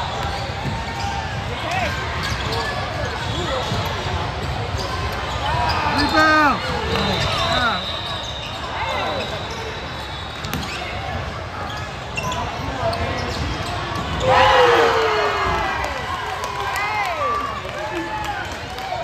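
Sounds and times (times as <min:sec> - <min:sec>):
basketball bouncing on court: 0:00.3 - 0:05.2.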